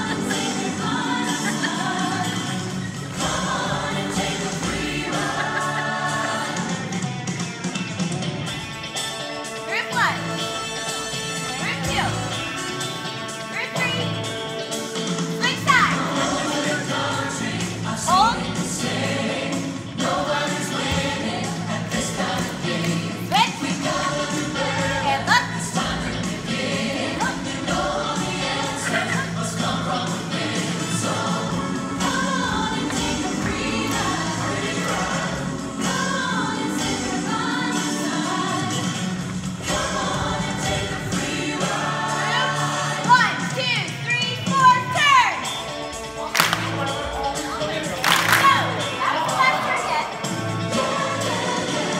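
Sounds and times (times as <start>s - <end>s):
choir singing upbeat song: 0.0s - 51.9s
steady music: 0.0s - 51.9s.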